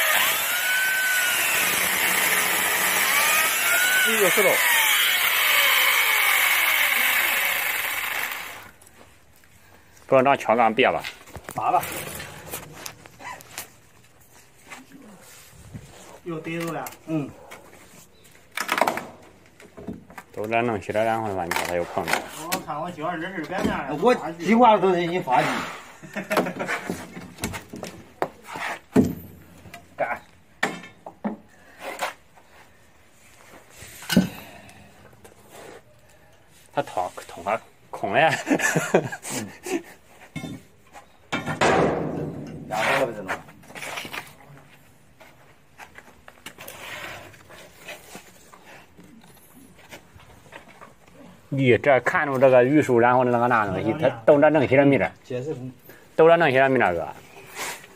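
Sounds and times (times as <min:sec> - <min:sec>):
electric chainsaw whine: 0:00.0 - 0:08.8
metal scraping wood: 0:40.2 - 0:44.4, 0:46.5 - 0:50.9.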